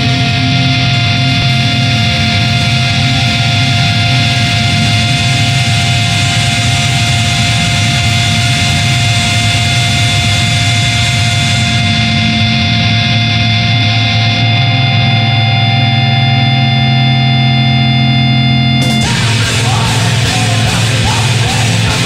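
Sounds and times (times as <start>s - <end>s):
distorted electric guitar drone: 0.0s - 22.0s.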